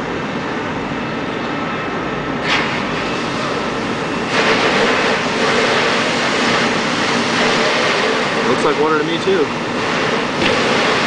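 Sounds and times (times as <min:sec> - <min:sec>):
engine and street noise: 0:00.0 - 0:11.0
fire hose spraying water: 0:02.4 - 0:11.0.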